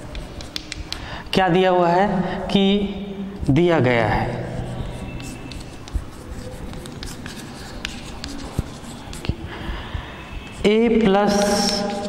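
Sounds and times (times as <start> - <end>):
chalk writing on blackboard: 0.0 - 1.3, 3.4 - 12.0.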